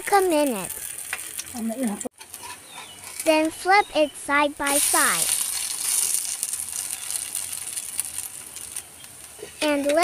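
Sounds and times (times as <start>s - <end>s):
batter sizzling in a pan: 0.0s - 10.0s.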